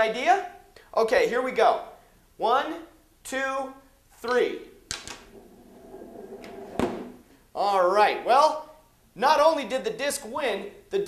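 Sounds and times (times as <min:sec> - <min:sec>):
disc and ring rolling rumble: 0:05.3 - 0:07.2
loud knock: 0:06.4 - 0:07.2.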